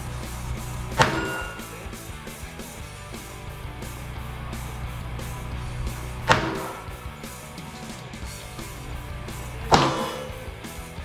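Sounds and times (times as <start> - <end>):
guitar rock music: 0.0 - 11.0
gunshot: 6.2 - 7.0, 9.7 - 10.4.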